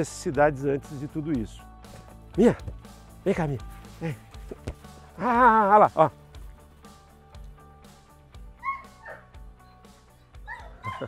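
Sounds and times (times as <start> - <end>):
background music with steady beat: 0.0 - 11.0
dog barking: 8.6 - 9.3, 10.5 - 11.0.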